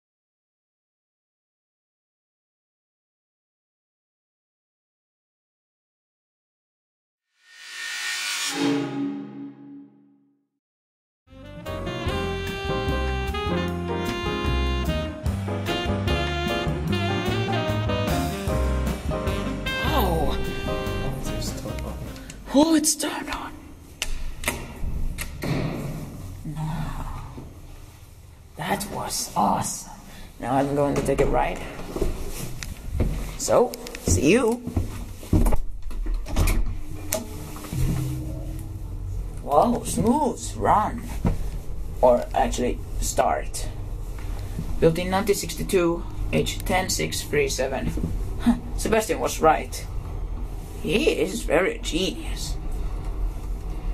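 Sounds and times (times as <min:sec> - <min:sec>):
whoosh: 0:07.4 - 0:10.3
held musical chord: 0:11.3 - 0:22.3, 0:37.7 - 0:39.3
low machine tone: 0:36.7 - 0:40.0
low hum: 0:36.8 - 0:40.4.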